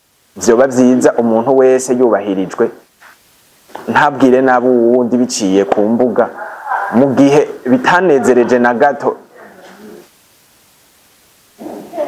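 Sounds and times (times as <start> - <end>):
faint room hiss: 0.0 - 12.0
man speaking: 3.9 - 9.6
faint voiced murmur: 6.3 - 7.2, 9.3 - 10.1, 11.6 - 12.0.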